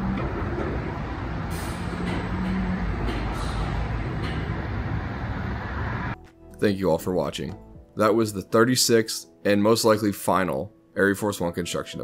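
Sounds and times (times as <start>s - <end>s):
roller coaster train rolling: 0.0s - 6.2s
pneumatic brake air hiss: 1.5s - 2.1s, 3.3s - 3.9s.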